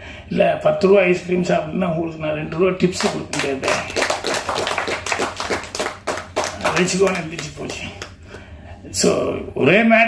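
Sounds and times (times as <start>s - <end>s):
audience clapping: 3.0s - 8.2s.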